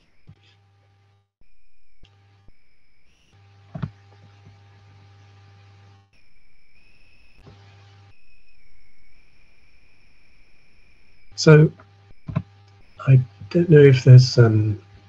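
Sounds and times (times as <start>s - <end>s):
faint steady tones: 0.0s - 0.6s, 1.4s - 15.0s
low electrical hum: 0.0s - 15.0s.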